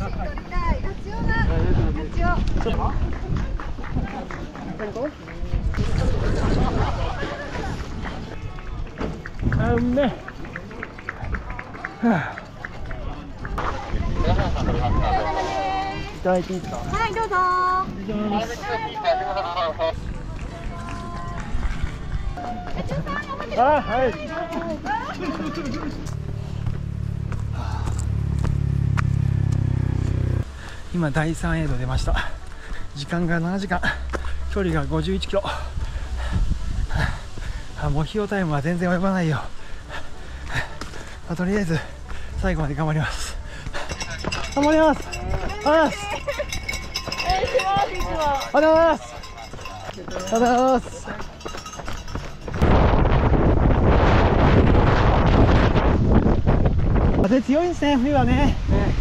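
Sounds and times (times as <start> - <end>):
wind on microphone: 5.5 - 9.9, 13.6 - 18.1, 35.6 - 37.8, 51.3 - 59.0
runner breathing heavily: 11.3 - 13.0, 26.0 - 28.6, 30.4 - 31.0, 32.0 - 33.1, 33.7 - 34.6, 35.4 - 37.9, 39.3 - 47.3, 47.9 - 52.6
people calling out: 43.9 - 51.4.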